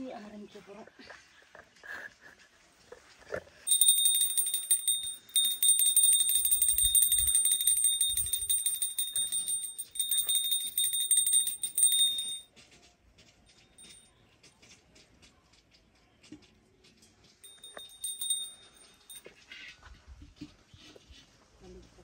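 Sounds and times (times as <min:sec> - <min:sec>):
metal hand bell ringing rapidly: 0:03.7 - 0:12.5, 0:17.4 - 0:19.2.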